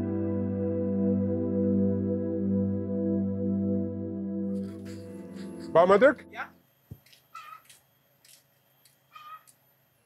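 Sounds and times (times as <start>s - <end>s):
person speaking: 4.8s - 6.6s
faint animal calls: 7.3s - 7.8s, 9.1s - 9.6s.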